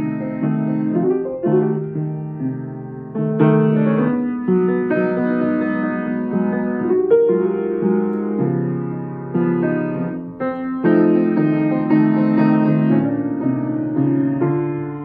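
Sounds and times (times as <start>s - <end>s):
piano playing slow chords: 0.0s - 15.0s.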